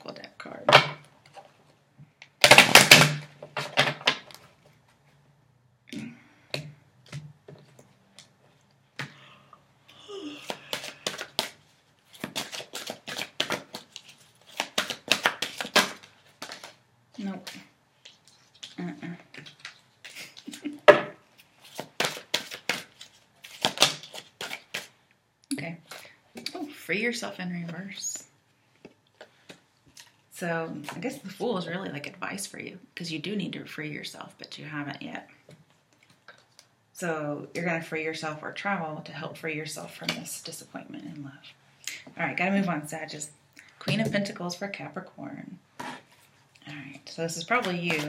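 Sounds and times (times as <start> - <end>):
cards flicking and slapping: 10.4 - 16.8, 21.6 - 24.9
cards riffling: 10.4 - 16.8, 21.4 - 24.9.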